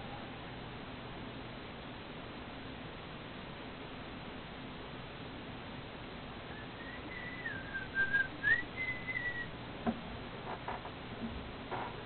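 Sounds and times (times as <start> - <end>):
sliding whistled notes: 6.5 - 9.5.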